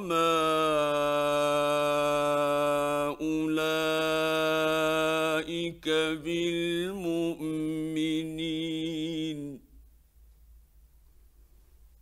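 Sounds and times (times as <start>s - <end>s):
man chanting: 0.0s - 9.7s.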